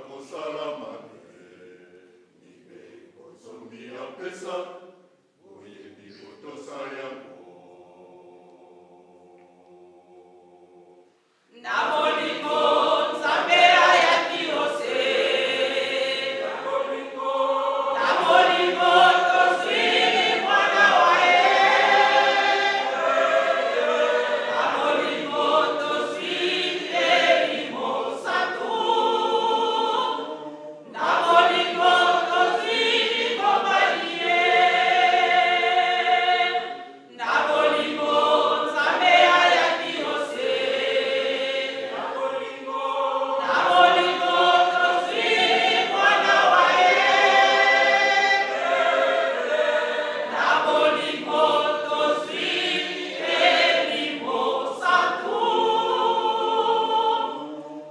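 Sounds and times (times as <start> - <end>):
group singing a hymn: 0.0 - 57.9.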